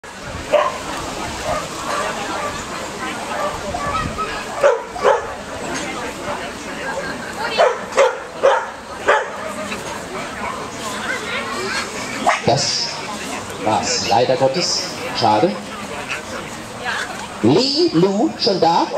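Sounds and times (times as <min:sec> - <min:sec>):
dog barking: 0:00.5 - 0:00.8, 0:03.4 - 0:03.6, 0:04.6 - 0:05.4, 0:07.5 - 0:09.4.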